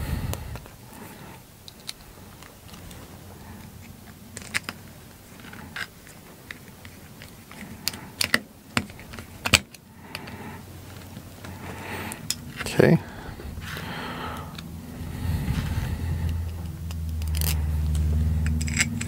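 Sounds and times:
metal parts clicking on metal plate: 0:18.4 - 0:19.0.

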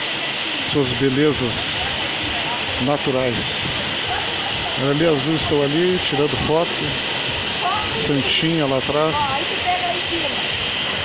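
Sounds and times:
waterfall hiss: 0:00.0 - 0:11.0.

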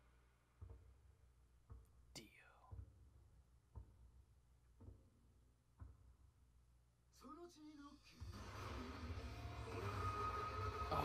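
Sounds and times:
faint low thumps: 0:00.6 - 0:06.9.

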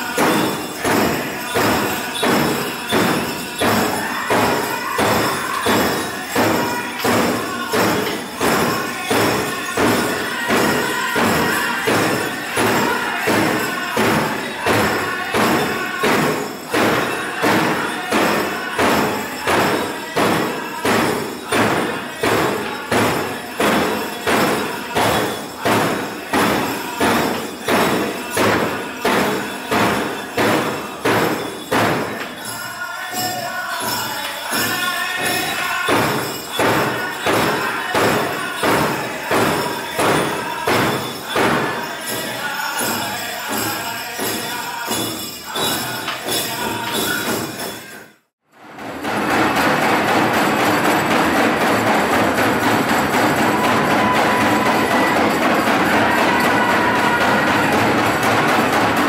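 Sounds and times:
drum beating steadily: 0:00.0 - 0:48.0, 0:48.6 - 0:59.0
people singing: 0:00.0 - 0:48.2, 0:48.8 - 0:59.0.

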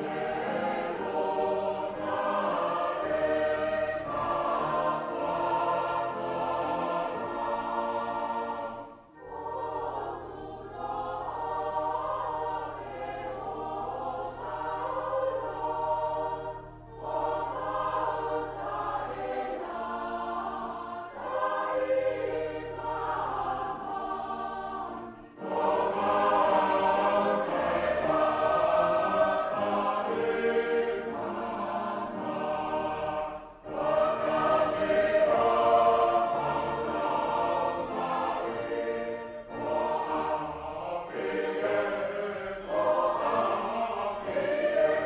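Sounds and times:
group singing a hymn: 0:00.0 - 0:45.0.

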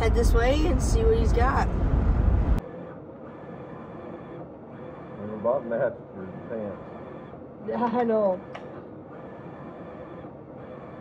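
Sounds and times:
inkjet printer printing: 0:02.6 - 0:11.0.

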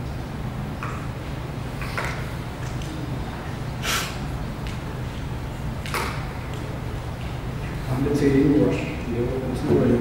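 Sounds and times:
steady low hum: 0:00.0 - 0:10.0
breath into close microphone: 0:03.8 - 0:04.2.

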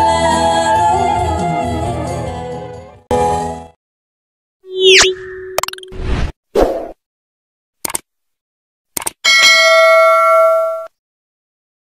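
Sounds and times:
mouse clicks: 0:07.8 - 0:08.1, 0:09.0 - 0:09.2
notification bell ding: 0:09.3 - 0:10.9.

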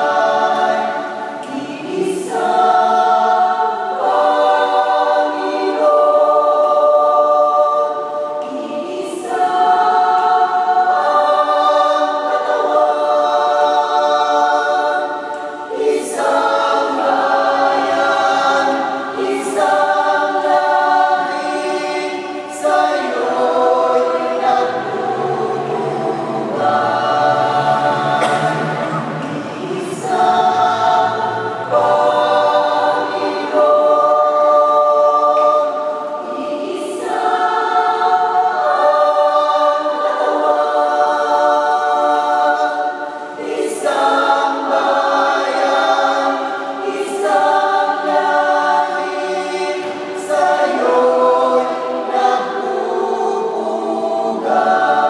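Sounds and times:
mixed choir singing a hymn: 0:00.0 - 0:55.0.

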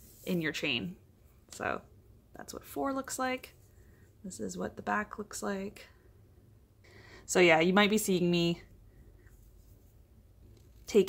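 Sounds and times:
yarn rustling on crochet hook: 0:00.0 - 0:00.9, 0:09.2 - 0:11.0
woman's voice: 0:00.2 - 0:03.6, 0:04.2 - 0:05.9, 0:07.3 - 0:08.7.

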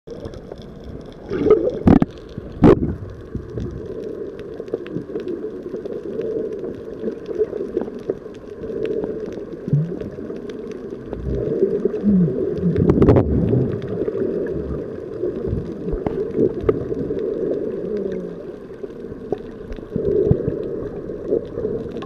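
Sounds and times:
faint crackling ticks: 0:00.1 - 0:22.0
muffled underwater rush: 0:00.1 - 0:22.0.

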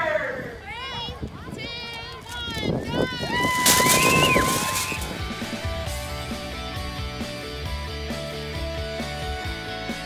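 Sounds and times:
young children shouting and cheering: 0:02.6 - 0:05.1
background music: 0:03.9 - 0:10.0.

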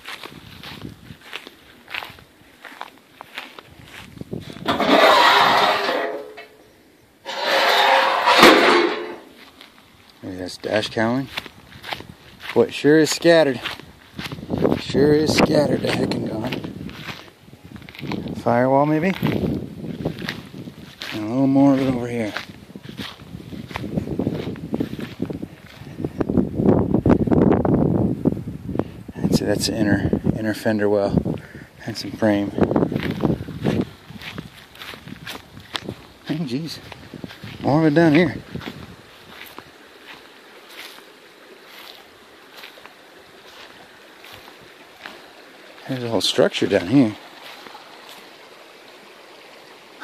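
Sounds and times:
footsteps through dry grass: 0:00.0 - 0:06.6, 0:07.3 - 0:26.1, 0:32.1 - 0:49.5
hand scraping rusted sheet metal: 0:04.4 - 0:06.6, 0:07.2 - 0:09.4.

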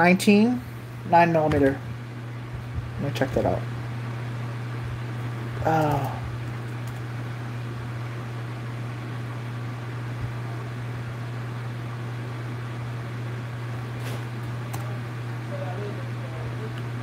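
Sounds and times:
ceiling fan humming: 0:00.0 - 0:17.0.

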